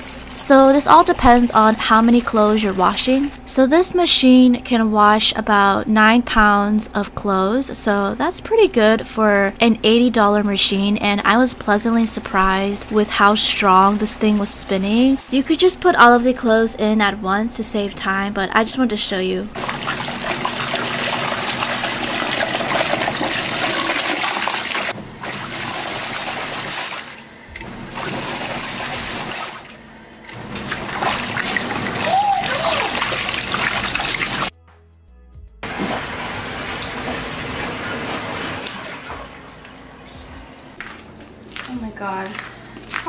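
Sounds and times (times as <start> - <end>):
washing machine sloshing water: 0.0 - 3.7, 11.0 - 16.6, 19.5 - 34.5, 35.6 - 40.0.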